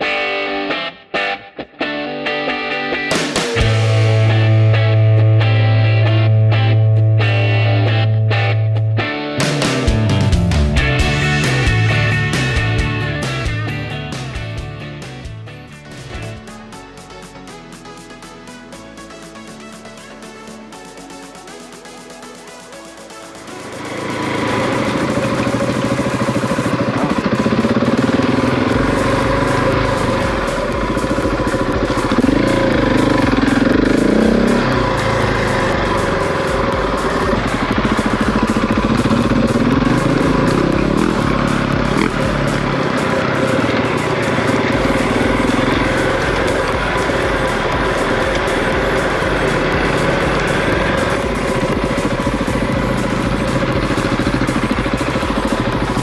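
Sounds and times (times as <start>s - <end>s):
motorcycle engine revving: 3.1s - 5.2s, 9.4s - 17.0s, 21.6s - 56.0s.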